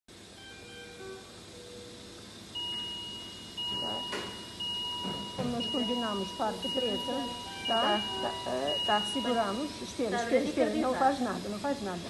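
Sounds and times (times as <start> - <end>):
medical equipment alarm tones: 0.2 - 11.8
steady high-pitched tone: 0.2 - 12.0.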